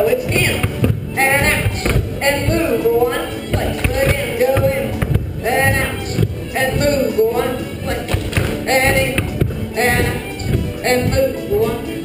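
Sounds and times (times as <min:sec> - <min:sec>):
dancers' feet on wooden floor: 0:00.0 - 0:12.0
folk dance band playing: 0:00.0 - 0:12.0.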